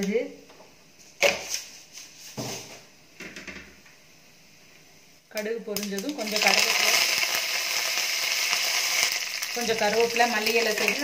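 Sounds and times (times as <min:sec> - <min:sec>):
spices sizzling in hot oil: 0:05.7 - 0:11.0.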